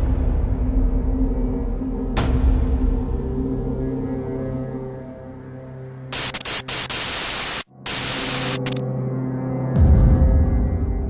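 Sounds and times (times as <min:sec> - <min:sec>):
radio static hiss: 0:06.1 - 0:08.8.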